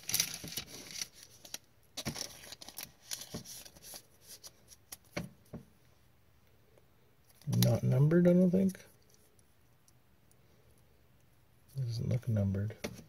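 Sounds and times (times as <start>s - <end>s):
card rustling and scraping: 0.0s - 5.2s.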